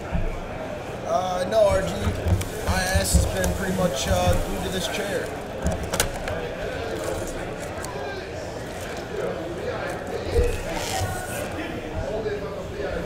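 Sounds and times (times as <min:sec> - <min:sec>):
people talking indistinctly: 0:00.0 - 0:13.0
card packs knocking on table: 0:01.9 - 0:04.7.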